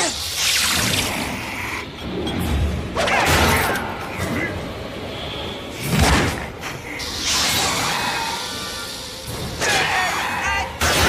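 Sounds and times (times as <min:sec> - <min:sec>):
hissing voice-like snarl: 0:06.8 - 0:10.5.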